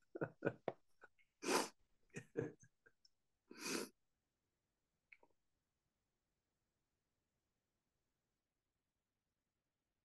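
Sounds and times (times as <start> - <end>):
man laughing: 0.0 - 0.7, 2.2 - 2.9
breathy exhalations: 3.5 - 3.9.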